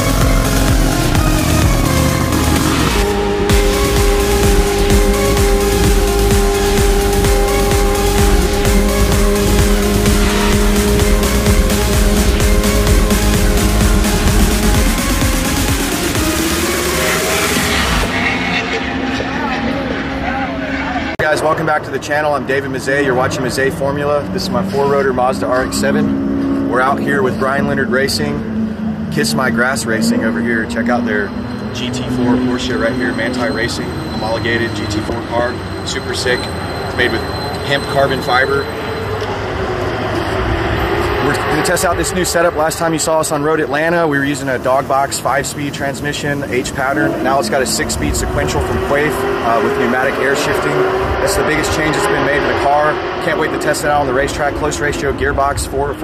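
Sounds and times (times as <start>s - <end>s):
motor running steadily: 0.0s - 21.1s
music: 0.0s - 21.2s
race car engine revving: 0.0s - 56.0s.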